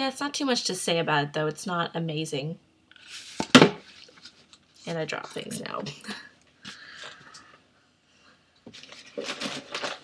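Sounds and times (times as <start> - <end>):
handling and shuffling: 3.0 - 5.9.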